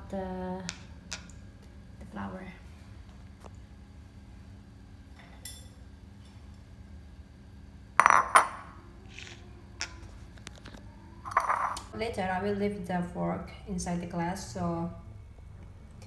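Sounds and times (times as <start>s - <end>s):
dishware clinking on counter: 8.0s - 8.6s, 11.3s - 11.8s.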